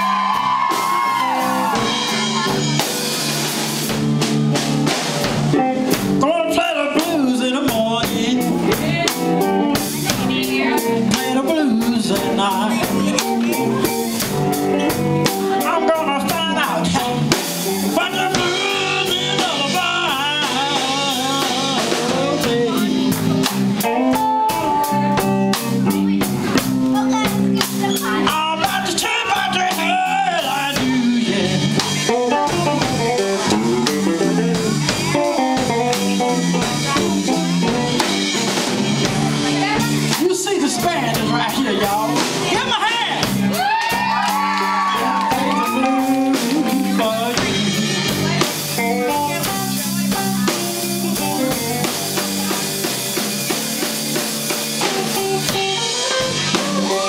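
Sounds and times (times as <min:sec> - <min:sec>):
electric blues band playing: 0:00.0 - 0:57.0.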